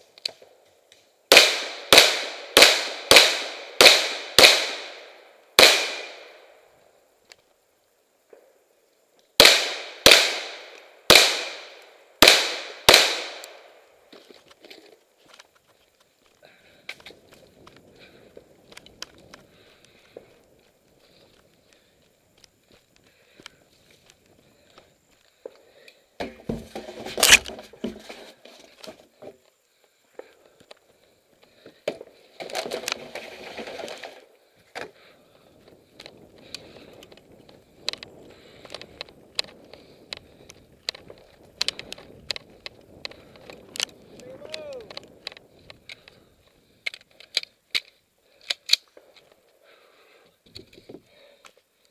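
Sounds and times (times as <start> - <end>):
gunshots with echo: 1.3 - 6.3, 9.4 - 13.6
footsteps on leafy dirt trail: 14.0 - 46.8.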